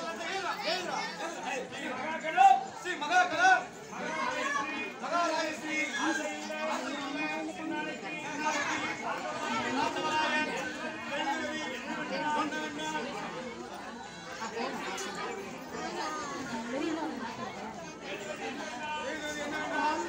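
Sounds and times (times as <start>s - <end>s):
voices chattering: 0.0s - 20.0s.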